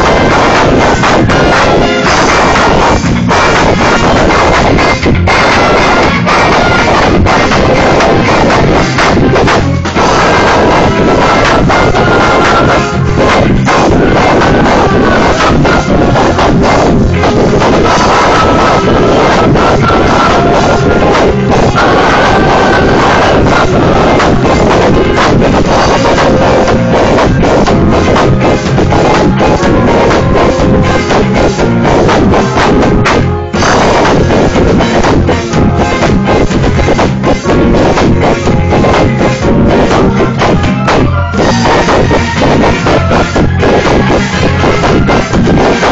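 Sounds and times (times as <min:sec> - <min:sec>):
live band playing loud music: 0:00.0 - 0:45.9.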